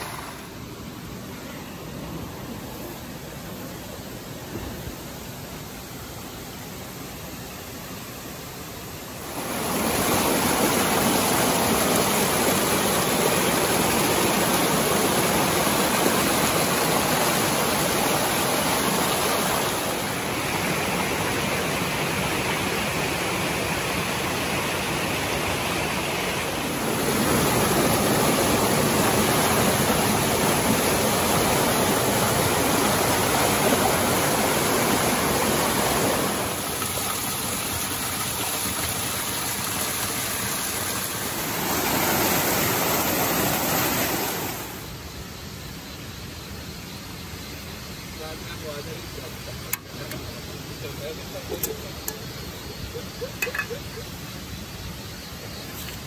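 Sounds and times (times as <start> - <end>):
stream rushing over boulders: 0.0 - 56.0.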